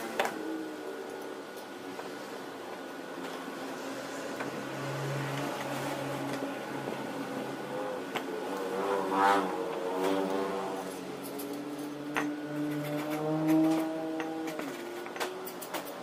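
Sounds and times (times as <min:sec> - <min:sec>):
vehicle engine passing: 0:03.6 - 0:15.2
hand tools clicking: 0:11.2 - 0:16.0.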